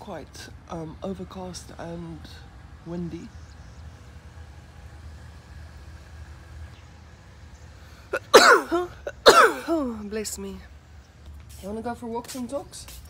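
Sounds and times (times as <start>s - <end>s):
woman sneezing: 8.2s - 9.8s.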